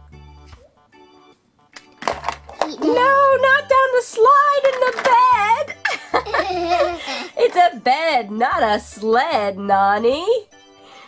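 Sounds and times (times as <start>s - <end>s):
soft background music: 0.0s - 11.0s
plastic toy clatter: 1.8s - 2.9s, 4.6s - 5.2s.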